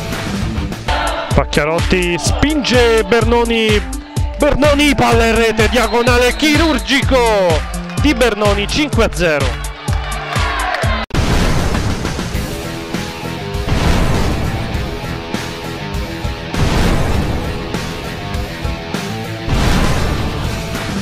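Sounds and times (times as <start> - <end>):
cinematic music: 0.0 - 21.0
boom and crash impact hits: 11.1 - 18.2, 19.4 - 20.9.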